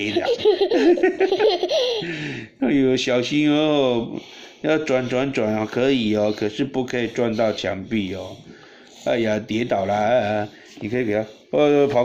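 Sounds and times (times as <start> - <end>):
child giggling: 0.0 - 2.2.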